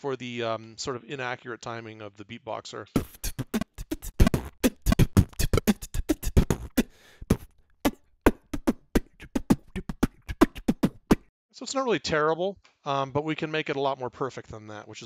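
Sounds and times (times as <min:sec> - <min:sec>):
human beatbox groove: 0:03.0 - 0:11.3.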